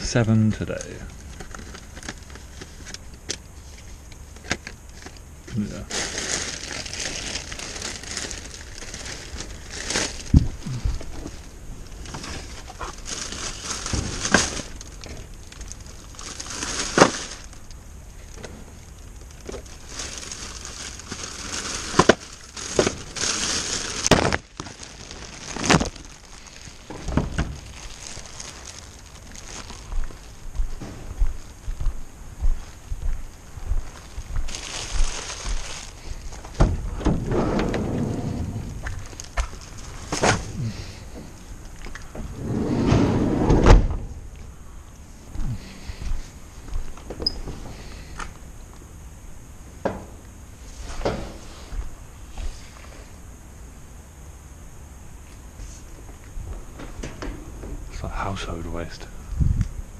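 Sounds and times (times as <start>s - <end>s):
plastic bags and paper rustling: 0.0s - 31.8s, 32.6s - 42.5s.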